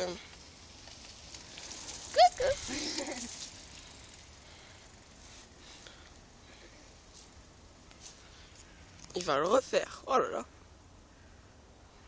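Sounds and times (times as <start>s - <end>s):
faint outdoor background: 0.0s - 12.0s
rustle: 0.0s - 12.0s.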